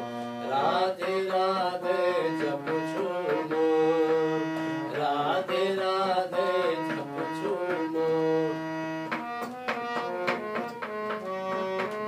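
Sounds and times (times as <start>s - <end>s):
harmonium melody: 0.0s - 12.0s
man singing: 0.4s - 8.7s.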